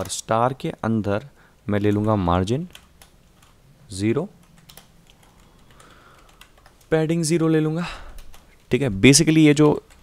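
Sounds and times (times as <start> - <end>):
computer keyboard typing: 1.6 - 3.6, 4.3 - 7.0, 8.0 - 8.8, 9.4 - 10.0.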